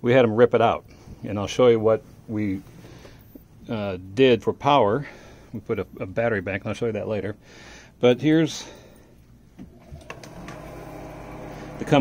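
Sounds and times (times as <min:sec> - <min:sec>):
low mechanical hum: 0:00.0 - 0:12.0
faint steady tones: 0:00.5 - 0:09.5.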